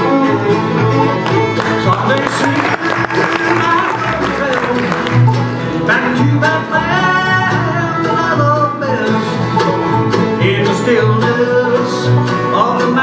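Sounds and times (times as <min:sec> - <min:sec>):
live bluegrass band playing: 0:00.0 - 0:13.0.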